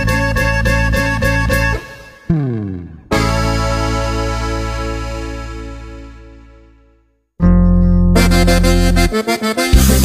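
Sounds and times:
band strumming held chord: 1.7 - 5.0.

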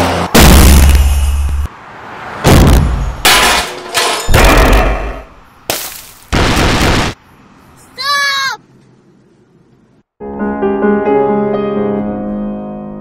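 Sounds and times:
car crash impacts and breaking: 2.4 - 7.2.

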